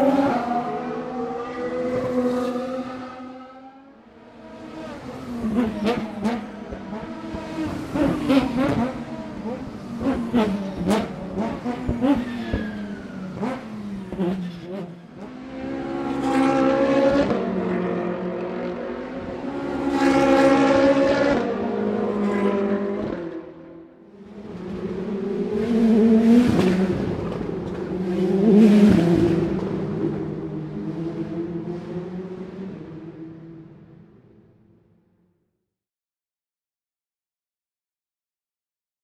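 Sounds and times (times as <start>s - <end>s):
race car engines passing: 0.0s - 34.3s.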